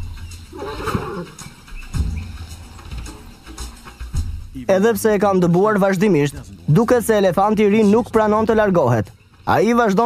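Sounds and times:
elephant harsh call: 0.5s - 3.3s.

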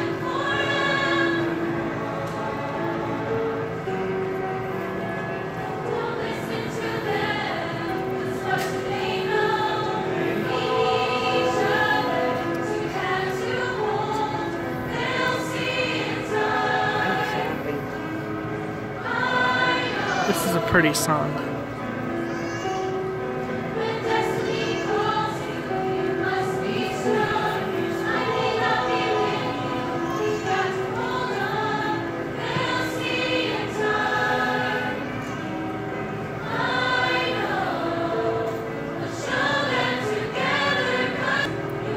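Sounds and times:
mixed-voice choir singing: 0.0s - 22.0s, 22.9s - 41.9s.

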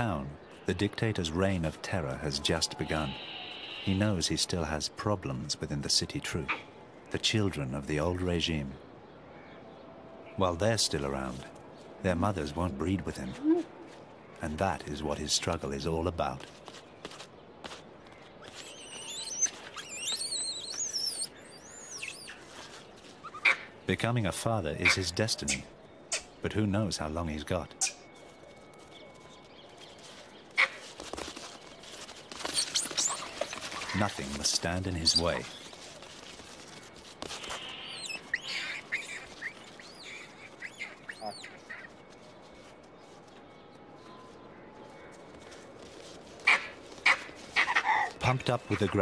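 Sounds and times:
monkey high-pitched calls: 18.4s - 22.4s, 23.2s - 23.7s, 32.4s - 34.0s, 37.4s - 41.9s, 46.4s - 48.2s.

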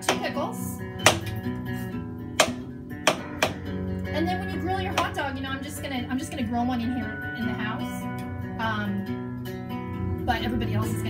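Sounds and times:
guitar music: 0.0s - 11.0s
knife chopping on cutting board: 1.1s - 1.4s, 2.4s - 3.6s.

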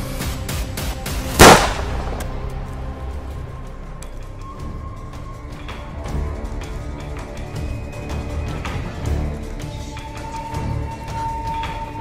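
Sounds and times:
dramatic background music: 0.0s - 12.0s
handgun shot: 1.4s - 2.4s.

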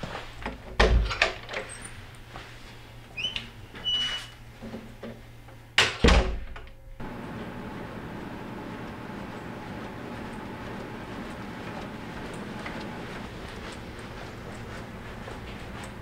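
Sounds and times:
door squeaking: 3.2s - 4.4s
door shutting: 5.8s - 6.7s.

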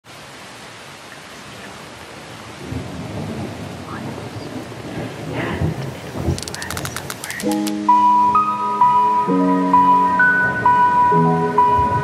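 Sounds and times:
wind rumbling on microphone: 1.4s - 7.7s.

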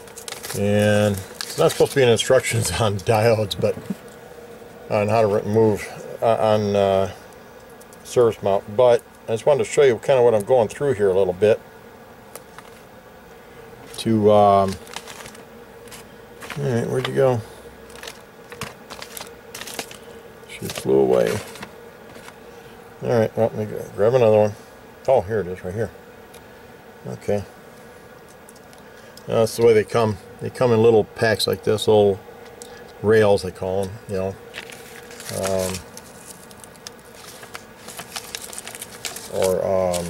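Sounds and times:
plastic packaging clicks and scratches: 0.0s - 2.2s, 12.3s - 12.8s, 14.6s - 17.2s, 17.8s - 22.4s, 34.5s - 40.0s
faint steady hum: 0.0s - 40.0s.

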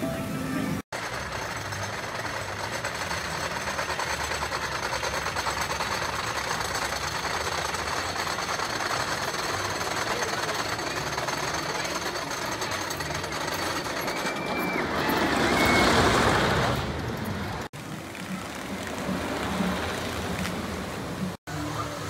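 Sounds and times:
roller coaster lift chain clatter: 0.9s - 20.6s.

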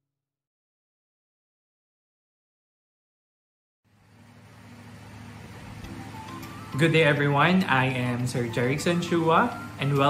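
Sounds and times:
low steady hum: 3.9s - 10.0s.

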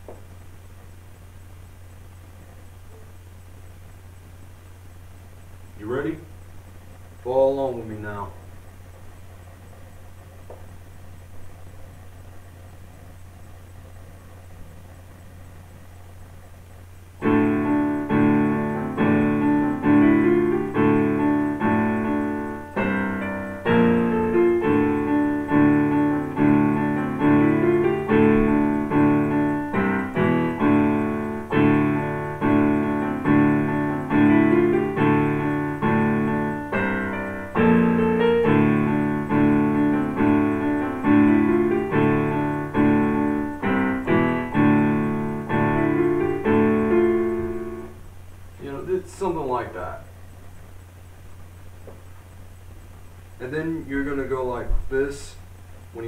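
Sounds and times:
low steady hum: 0.0s - 56.0s
electronic keyboard playing chords: 17.2s - 48.9s.

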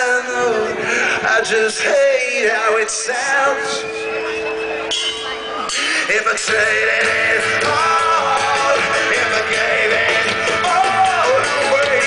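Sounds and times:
live rock band through pa: 0.0s - 12.0s
people's voices: 0.0s - 12.0s.

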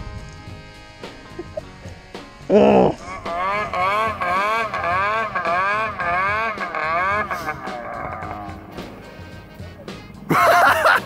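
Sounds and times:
snowmobile engine revving: 0.0s - 11.0s.

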